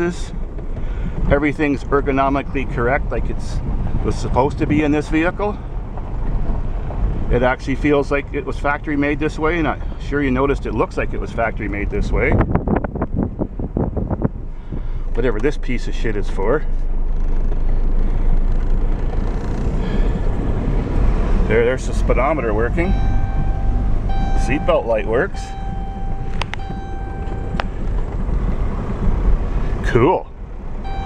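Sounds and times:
car interior road noise: 0.0 - 31.0
wind noise: 11.1 - 15.1, 22.7 - 31.0
wind on microphone: 12.0 - 15.0
steady high tone: 22.4 - 28.6
click: 26.3 - 26.6.

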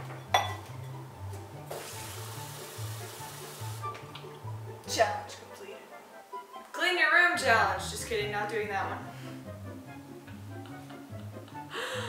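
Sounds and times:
background music with bass: 0.0 - 5.7, 7.4 - 12.0
glass knock: 0.1 - 0.7.

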